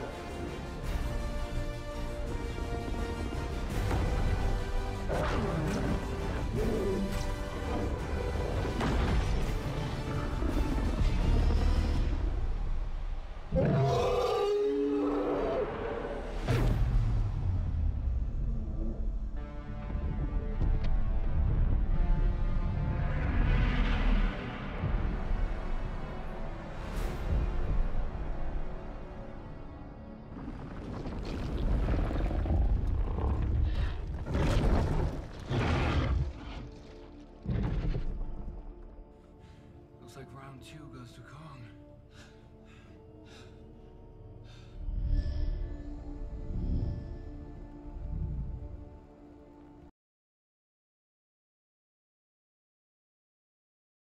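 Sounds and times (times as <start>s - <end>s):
dramatic film score: 0.0s - 49.9s
deep dense rumbling: 30.1s - 39.2s, 42.2s - 49.2s.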